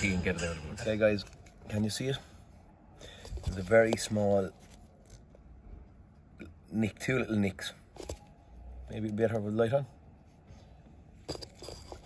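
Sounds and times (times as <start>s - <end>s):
handling noise: 3.0s - 5.5s, 10.4s - 12.0s.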